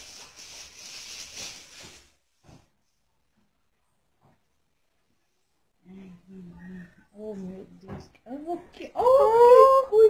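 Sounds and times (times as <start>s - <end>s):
plastic wrapping crinkling: 0.0s - 2.4s.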